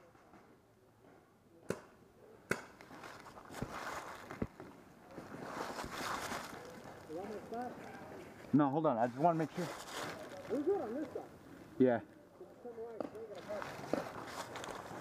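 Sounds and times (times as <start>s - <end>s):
rustling in dry leaves: 2.9s - 11.3s, 13.3s - 15.0s
faint voices: 4.9s - 15.0s.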